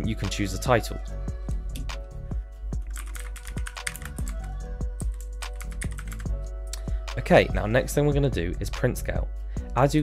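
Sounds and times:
background music: 0:00.0 - 0:10.0
computer keyboard typing: 0:02.8 - 0:06.3.

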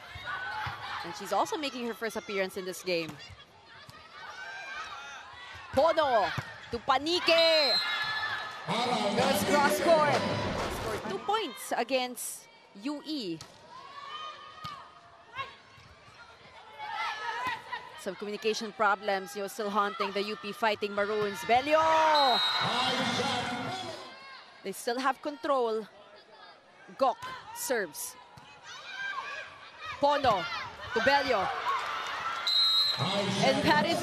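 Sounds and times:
players calling out with echo: 0:05.7 - 0:13.4, 0:16.8 - 0:31.7, 0:32.4 - 0:34.0.

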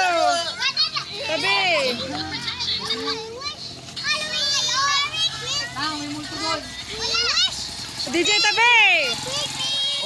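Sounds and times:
children talking and calling out: 0:00.0 - 0:10.0
children's high-pitched shouts: 0:00.0 - 0:10.0.

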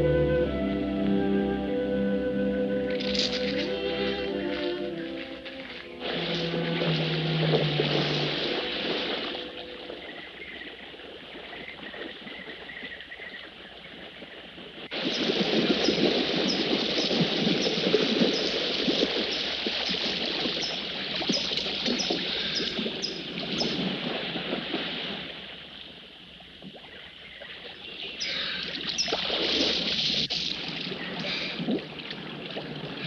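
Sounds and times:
water lapping: 0:02.4 - 0:33.0
swimmer splashing: 0:02.8 - 0:33.0.

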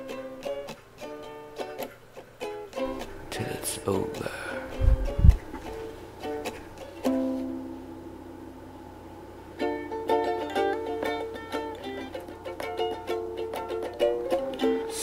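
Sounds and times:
plucked string instrument: 0:00.0 - 0:15.0.

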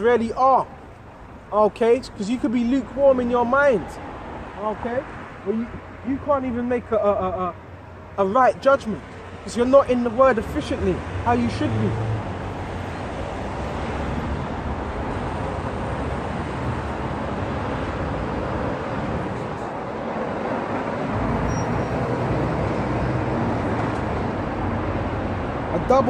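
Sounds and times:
road traffic rumble: 0:00.0 - 0:26.0.

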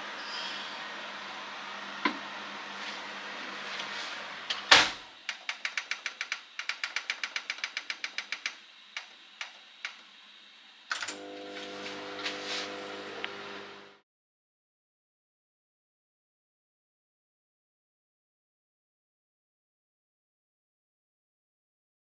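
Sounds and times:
microwave oven humming: 0:11.0 - 0:14.0.

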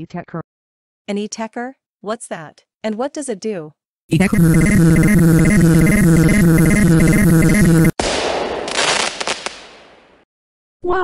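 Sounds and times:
crackling explosion blast: 0:08.0 - 0:10.2.

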